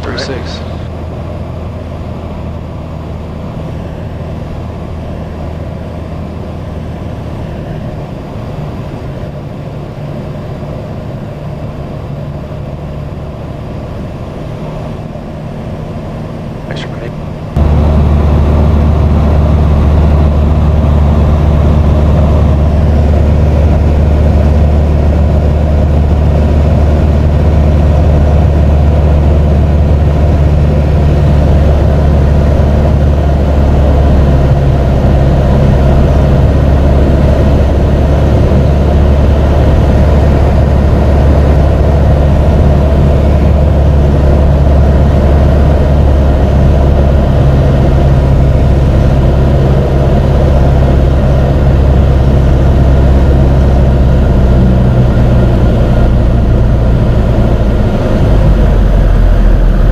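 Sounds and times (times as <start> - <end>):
aircraft engine and propeller droning: 0.0 - 59.9.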